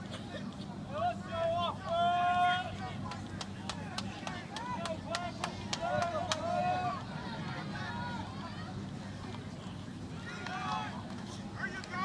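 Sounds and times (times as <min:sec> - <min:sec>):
voices shouting: 0:00.9 - 0:03.0, 0:04.2 - 0:08.8, 0:10.2 - 0:12.0
sharp claps: 0:03.0 - 0:06.5.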